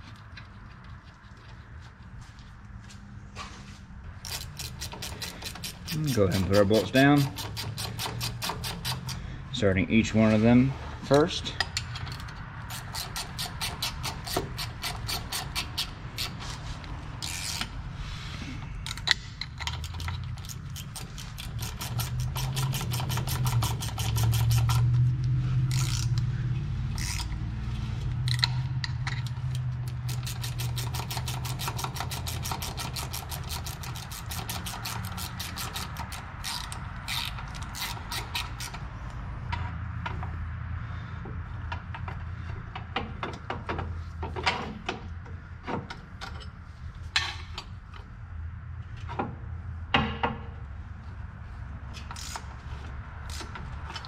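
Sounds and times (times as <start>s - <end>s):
socket ratchet clicking: 4.2s - 9.2s, 11.6s - 16.4s, 18.8s - 26.2s, 26.9s - 27.4s, 28.2s - 39.2s.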